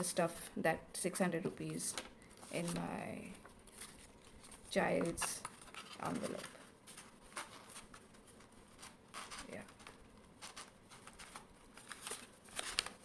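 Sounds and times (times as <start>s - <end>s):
paper banknotes rustling: 1.7s - 13.0s.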